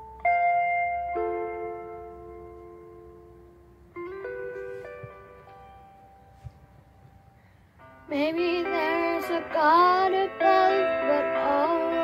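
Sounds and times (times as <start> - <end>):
instrumental backing music chords: 0.0 - 12.0.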